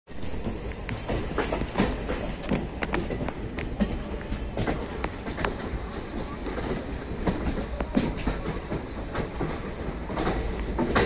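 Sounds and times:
train wheels rumbling on rails: 0.1s - 11.0s
wheels clattering over rail joints: 0.1s - 11.0s.

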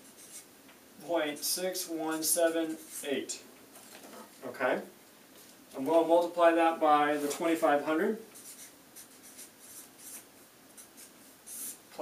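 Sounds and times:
marker scratching on paper: 0.0s - 0.5s, 2.1s - 3.1s, 8.4s - 11.8s.

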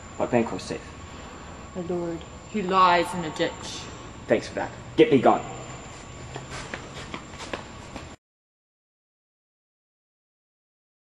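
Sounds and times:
soft footsteps on indoor floor: 5.8s - 8.2s.

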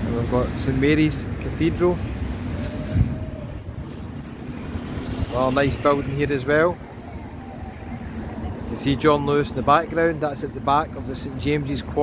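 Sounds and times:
distant traffic: 0.0s - 12.0s
wind on microphone: 2.0s - 9.6s.

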